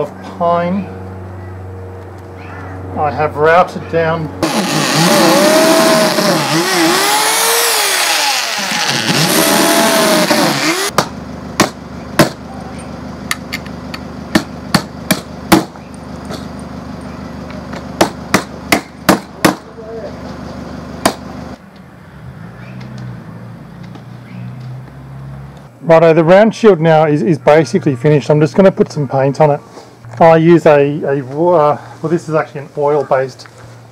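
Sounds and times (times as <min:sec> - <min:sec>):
cordless drill boring through wood: 0:04.4 - 0:10.9.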